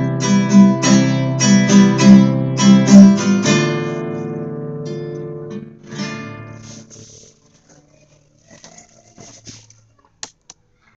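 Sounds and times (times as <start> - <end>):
classical guitar strums: 0.0 - 7.4.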